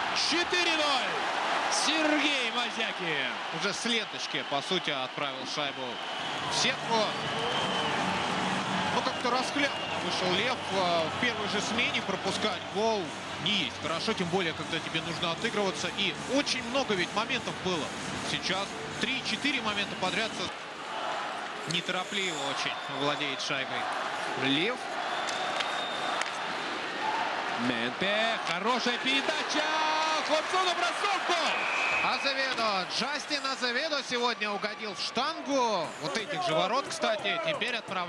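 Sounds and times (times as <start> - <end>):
crowd murmur in arena: 0.0 - 38.0
hockey sticks and puck clicking: 21.4 - 21.9, 25.2 - 26.6, 28.4 - 28.9.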